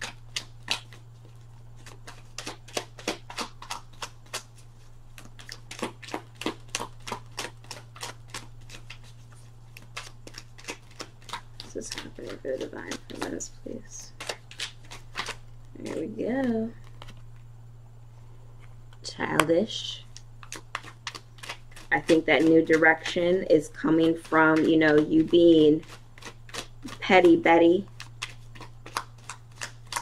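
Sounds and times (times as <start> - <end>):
cards being shuffled: 0.0 - 17.5, 19.2 - 30.0
steady low hum: 0.0 - 30.0.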